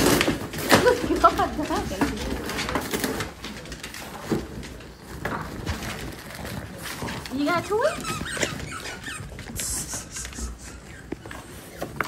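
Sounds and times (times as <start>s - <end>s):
dogs grunting and snuffling: 4.8s - 12.0s.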